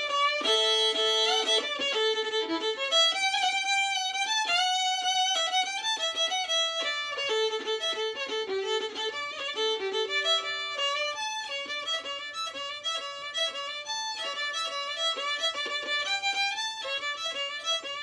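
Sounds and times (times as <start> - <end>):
solo fiddle playing: 0.0 - 18.0.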